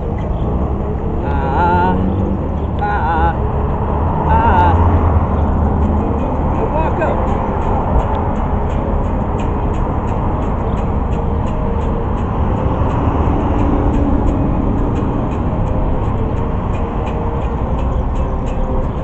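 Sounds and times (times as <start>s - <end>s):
electric guitar strumming: 0.0s - 19.0s
person singing ah: 1.0s - 5.8s.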